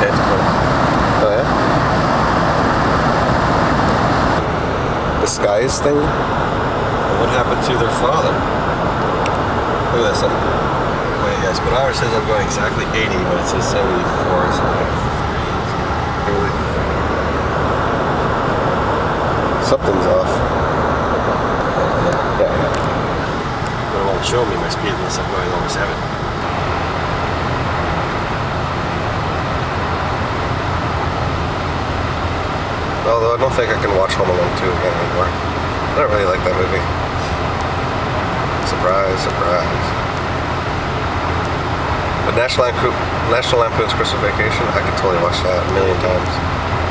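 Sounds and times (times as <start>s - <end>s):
truck cabin road noise: 0.0s - 46.9s.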